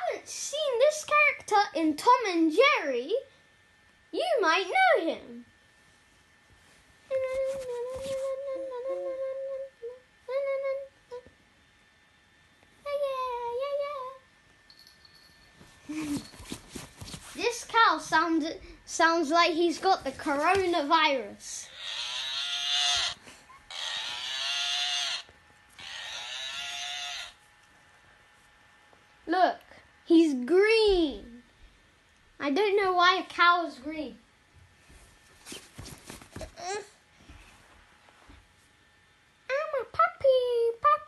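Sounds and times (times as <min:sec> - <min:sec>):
child humming: 0:07.1 - 0:11.3, 0:36.4 - 0:37.0
toy cow buzzy moo: 0:21.7 - 0:27.4.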